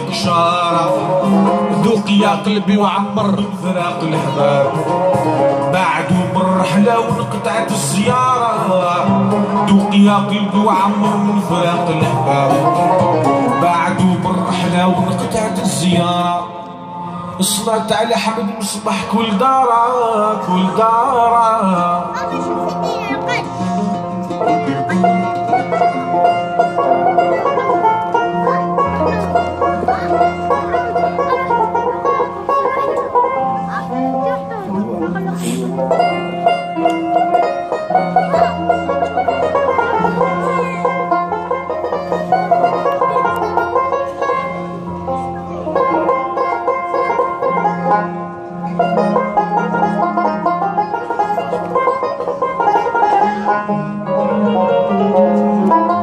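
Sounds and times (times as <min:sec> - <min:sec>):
low bass notes: 0:00.0 - 0:56.0
plucked banjo melody: 0:00.0 - 0:56.0.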